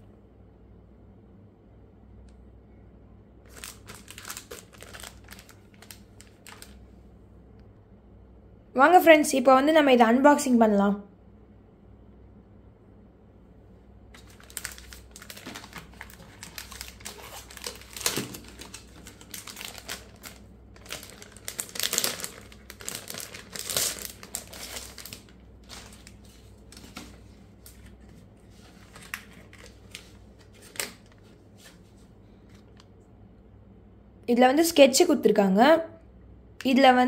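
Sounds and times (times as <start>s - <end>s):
plastic packaging crinkling: 3.5s - 6.8s, 14.1s - 31.8s.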